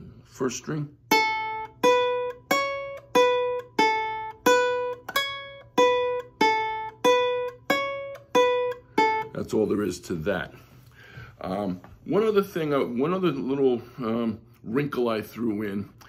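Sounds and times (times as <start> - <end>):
ukulele plucked notes: 1.1 - 9.4.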